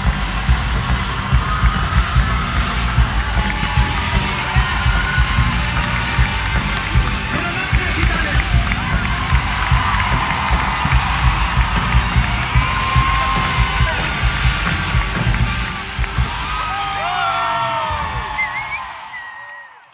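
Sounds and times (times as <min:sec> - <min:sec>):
live concert music with beat: 0:00.0 - 0:19.6
crowd cheering and whooping: 0:00.0 - 0:19.9.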